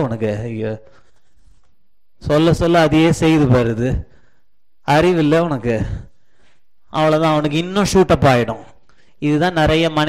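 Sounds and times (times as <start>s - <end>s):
man preaching: 0.0s - 1.1s, 2.2s - 6.2s, 6.9s - 10.0s.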